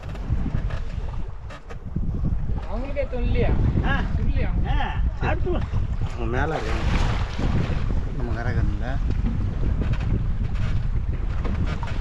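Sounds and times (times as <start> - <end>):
water lapping around boat: 0.0 - 12.0
wind buffeting microphone: 0.0 - 12.0
water splashing: 2.4 - 9.8.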